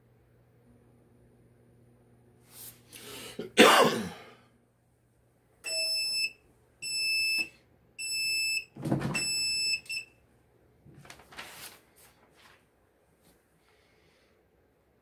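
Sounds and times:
timer beeping: 0:05.7 - 0:10.1.

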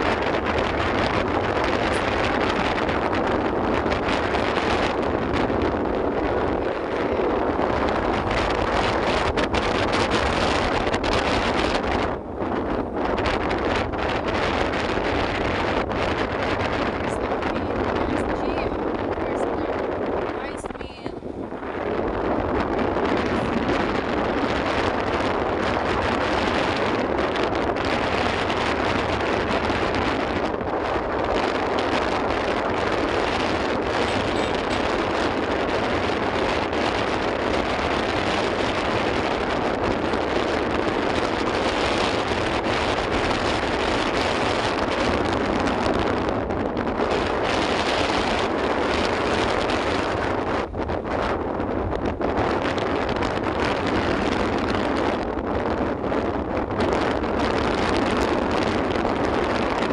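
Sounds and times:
road and engine noise: 0:00.0 - 0:59.9
wind rushing over microphone: 0:00.0 - 0:59.9.

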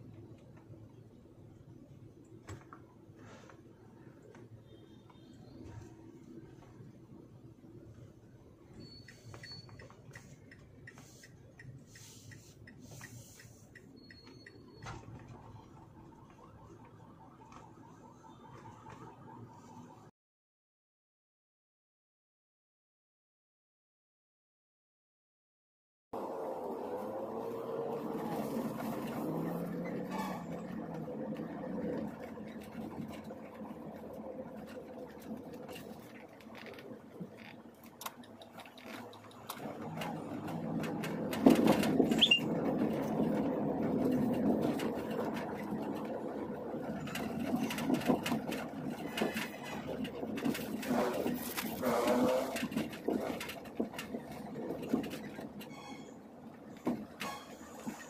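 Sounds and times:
engine and road rumble: 0:00.0 - 0:20.1, 0:26.2 - 0:58.0.

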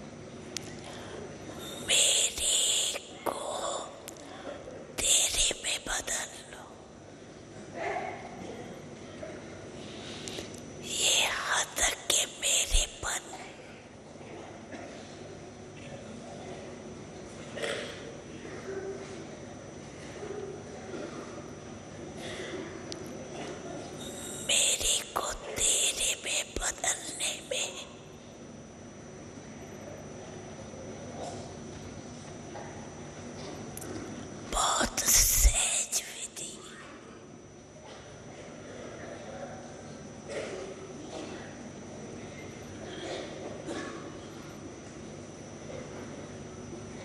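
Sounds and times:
woman whispering: 0:01.9 - 0:04.3, 0:05.0 - 0:07.0, 0:10.8 - 0:13.8, 0:24.4 - 0:28.0, 0:34.5 - 0:36.9.

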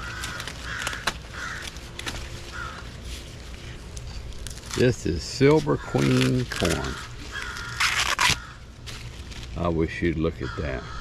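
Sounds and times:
bird calling harshly: 0:00.0 - 0:03.0, 0:05.5 - 0:08.7, 0:10.4 - 0:11.0.

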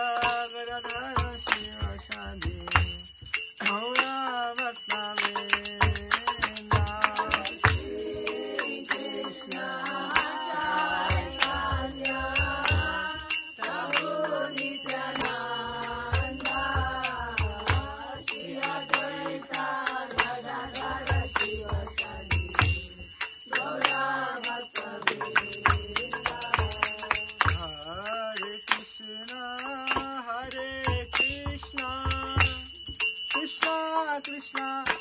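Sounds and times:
voices singing a chant: 0:00.0 - 0:34.7
small hand cymbals striking: 0:00.0 - 0:35.0.

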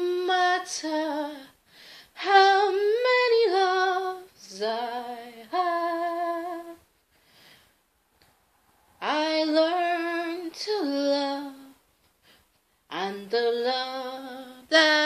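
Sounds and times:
woman singing unaccompanied: 0:00.0 - 0:06.9, 0:09.0 - 0:11.8, 0:12.9 - 0:15.0.

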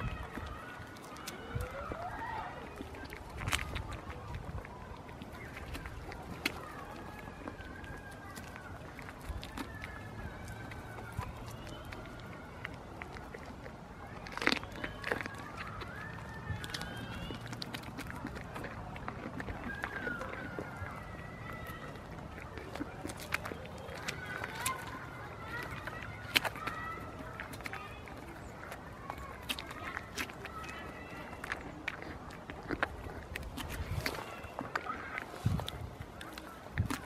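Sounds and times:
goat chewing crisp crunches: 0:00.0 - 0:37.0.

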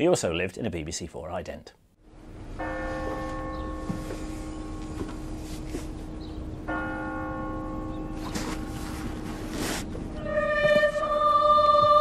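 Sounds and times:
bell tolling: 0:02.3 - 0:09.0
short rustles: 0:08.2 - 0:11.0.

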